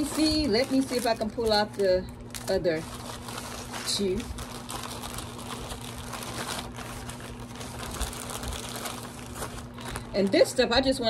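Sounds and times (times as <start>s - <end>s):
plastic packaging crinkling: 0.0s - 11.0s
steady low hum: 0.0s - 11.0s.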